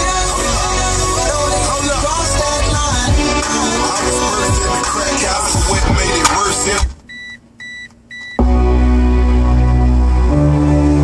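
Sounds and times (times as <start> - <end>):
heavy deep bass music: 0.0 - 7.0, 8.4 - 11.0
music from car stereo: 0.0 - 11.0
short high beeps: 7.1 - 8.4.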